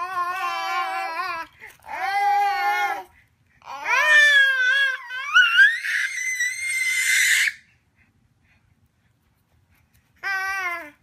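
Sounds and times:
baby squealing: 0:03.7 - 0:07.6.

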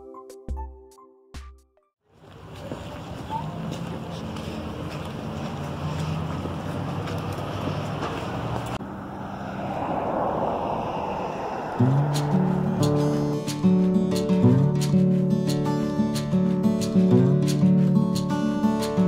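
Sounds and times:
street traffic: 0:02.0 - 0:19.0
wind on microphone: 0:09.6 - 0:14.8.

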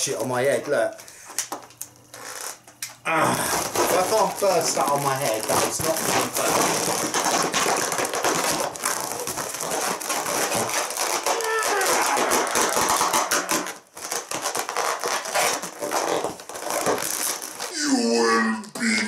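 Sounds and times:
foil balloon crinkling: 0:00.0 - 0:17.8
person grunting or laughing: 0:03.1 - 0:03.6, 0:11.3 - 0:12.9, 0:17.7 - 0:19.0.

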